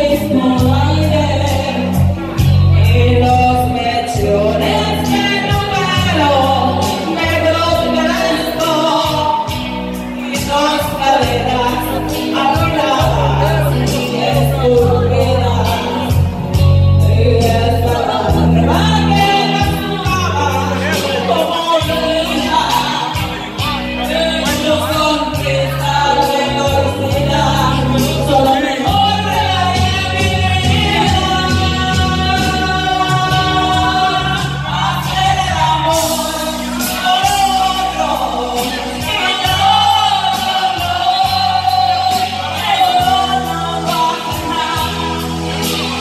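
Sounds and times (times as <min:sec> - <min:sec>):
karaoke backing track with bass: 0:00.0 - 0:46.0
women singing through microphones: 0:00.0 - 0:46.0.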